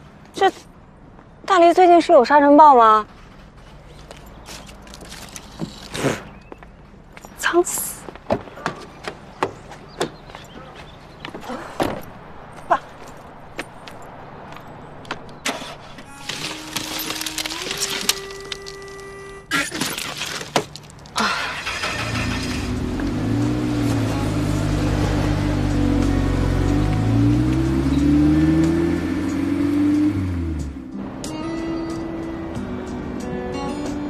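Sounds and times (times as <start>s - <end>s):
car engine running: 21.4s - 30.8s
music: 23.4s - 34.0s.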